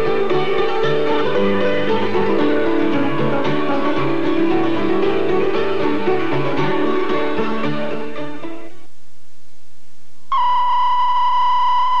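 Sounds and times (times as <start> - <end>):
steady test tone: 8.7 - 12.0.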